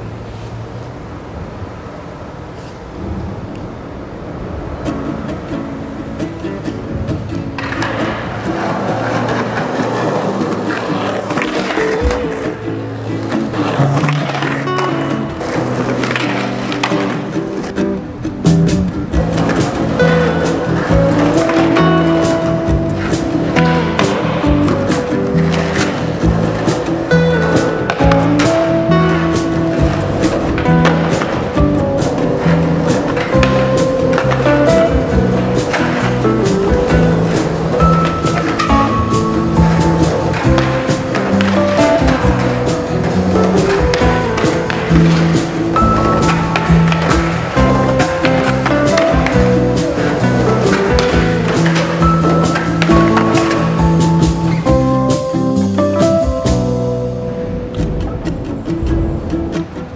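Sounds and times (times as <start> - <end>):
skateboard rolling on concrete: 0.0 - 59.9
skateboard clacks: 2.6 - 59.9
music with a steady beat: 18.5 - 57.0.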